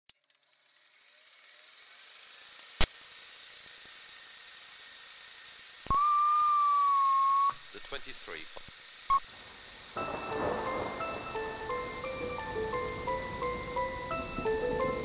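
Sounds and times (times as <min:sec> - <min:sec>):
film hiss: 0:05.8 - 0:15.0
steady beep: 0:05.9 - 0:07.6.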